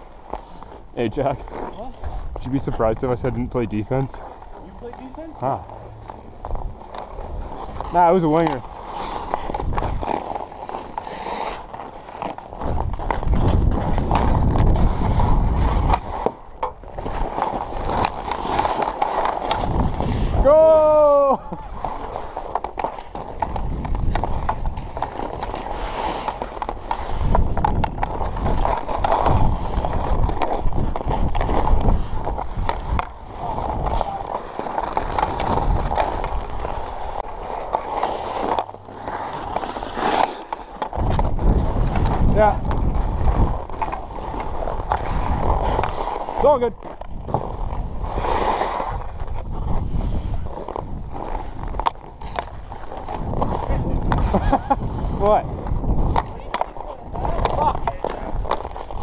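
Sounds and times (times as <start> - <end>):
skate blades scraping ice: 0.0 - 59.0
wind rumbling on microphone: 1.9 - 11.0, 12.3 - 18.6, 19.2 - 37.7, 40.8 - 59.0.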